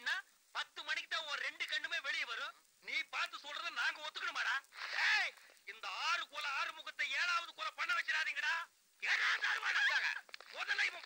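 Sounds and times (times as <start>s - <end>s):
rapid speech: 0.0s - 11.0s.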